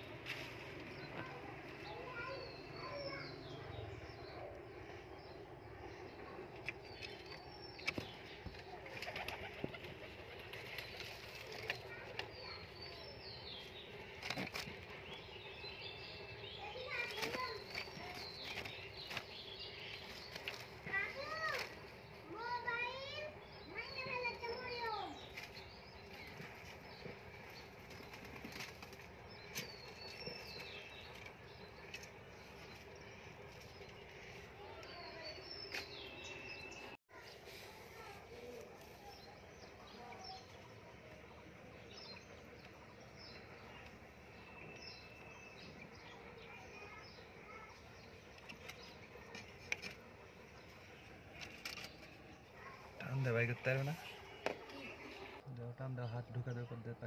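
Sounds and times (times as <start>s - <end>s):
high descending bird chirp: 1.9s - 4.6s.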